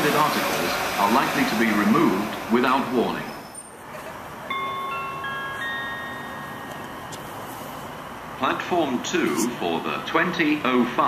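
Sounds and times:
station chime ringing notes: 9.2s - 9.5s.

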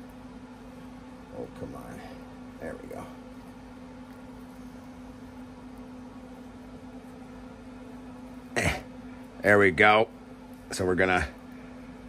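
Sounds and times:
faint room hum: 0.0s - 12.0s
man clearing throat: 8.5s - 9.0s.

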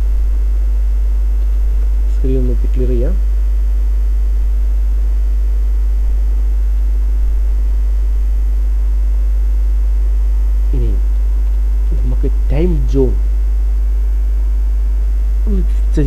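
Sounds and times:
low electrical mains hum: 0.0s - 16.0s.

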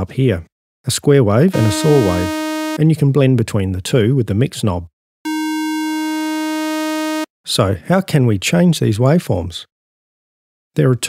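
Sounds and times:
synthesizer held note: 1.6s - 2.8s, 5.3s - 7.3s.

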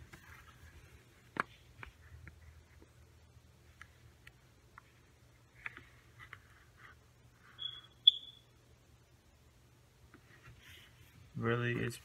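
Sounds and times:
high-pitched squeak: 7.6s - 8.5s.

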